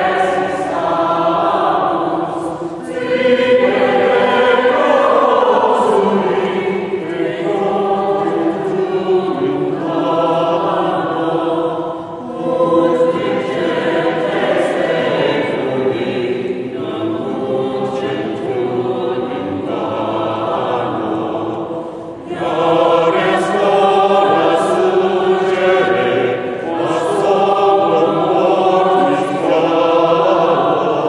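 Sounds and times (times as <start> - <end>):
mixed choir singing: 0.0 - 31.0.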